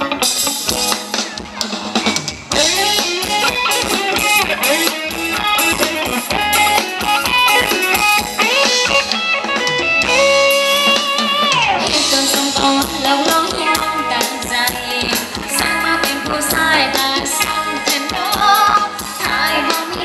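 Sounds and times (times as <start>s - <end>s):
dance band with guitar and drums: 0.0s - 20.0s.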